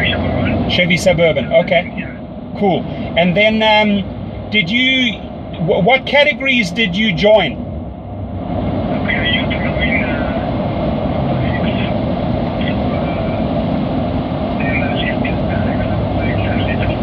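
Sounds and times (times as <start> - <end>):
vehicle cabin rumble and hiss: 0.0 - 17.0.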